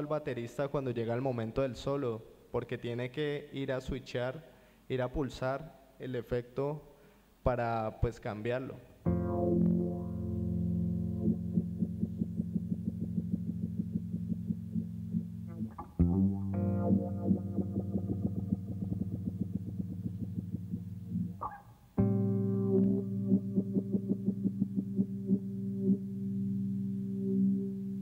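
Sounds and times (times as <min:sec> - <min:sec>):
electric bass with effects: 0:09.0 - 0:28.0.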